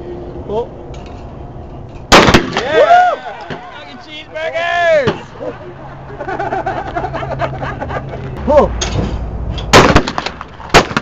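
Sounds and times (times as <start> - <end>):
shotgun shot: 2.1 - 2.7, 9.7 - 11.0
man calling out: 3.6 - 5.2.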